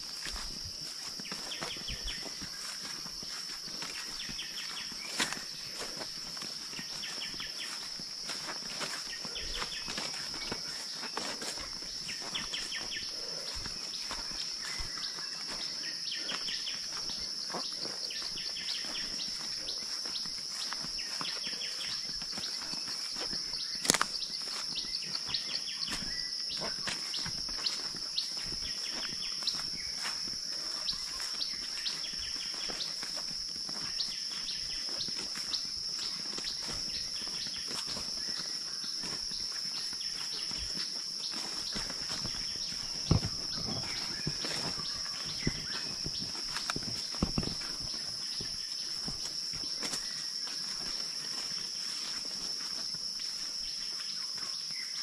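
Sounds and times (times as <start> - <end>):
birds chirping: 0.0 - 55.0
footsteps through undergrowth: 0.0 - 55.0
insect drone: 0.0 - 55.0.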